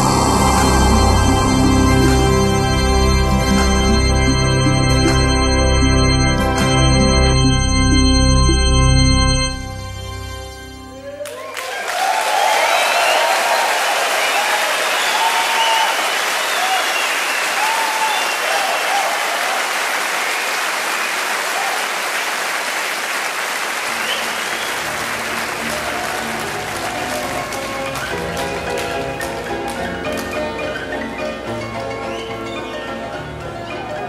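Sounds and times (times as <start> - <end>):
audience applauding: 0.0 - 3.8, 11.0 - 31.2
music with sustained notes: 0.0 - 11.2, 24.4 - 34.0
shouts and whoops: 11.0 - 19.8.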